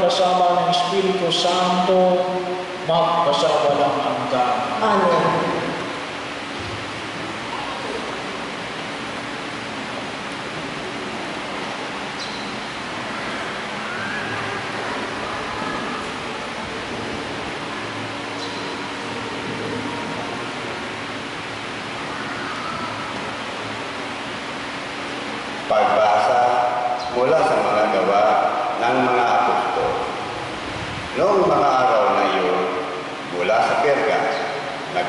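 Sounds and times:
background room noise hiss: 0:00.0 - 0:35.0.

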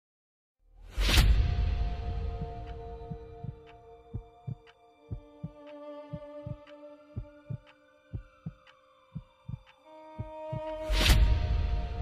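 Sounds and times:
heartbeat double thump: 0:02.2 - 0:06.6.

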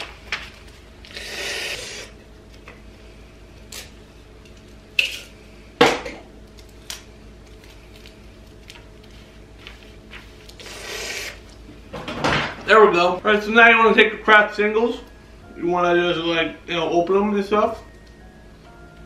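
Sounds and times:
faint steady hum: 0:00.0 - 0:19.0
paper rustle: 0:07.5 - 0:10.6.

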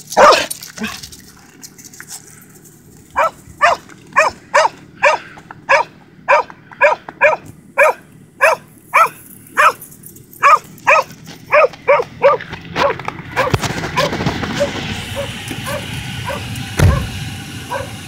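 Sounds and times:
dog barking: 0:00.2 - 0:00.5, 0:03.2 - 0:09.8, 0:10.4 - 0:17.1, 0:17.7 - 0:18.0.

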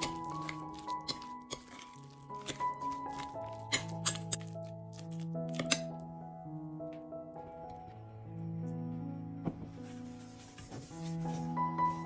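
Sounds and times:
spoon scraping glass bowl: 0:00.0 - 0:04.5
background music with held notes: 0:00.0 - 0:12.0.

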